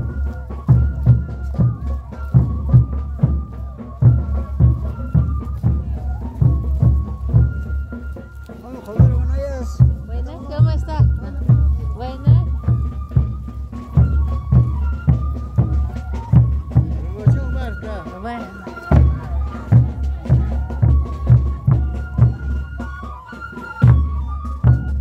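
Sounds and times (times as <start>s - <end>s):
bass drum beat: 0.0s - 25.0s
reedy wind melody: 0.0s - 25.0s.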